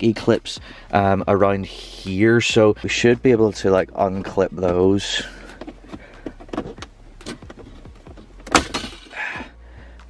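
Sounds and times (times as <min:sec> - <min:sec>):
plastic trim clicking and creaking: 0:04.2 - 0:09.0.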